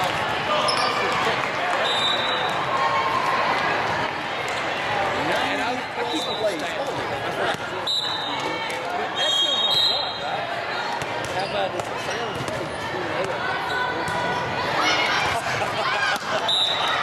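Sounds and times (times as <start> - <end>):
many overlapping voices: 0.0 - 17.0
volleyballs being hit and bounced: 6.8 - 7.8, 10.9 - 13.4, 14.0 - 17.0.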